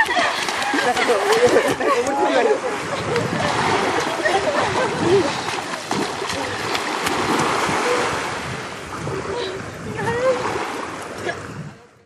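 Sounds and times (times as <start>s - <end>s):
small waves washing onto beach: 0.0s - 12.0s.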